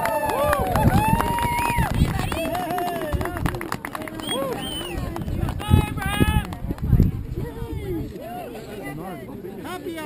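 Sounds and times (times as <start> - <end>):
people talking and calling out: 0.3 - 10.0.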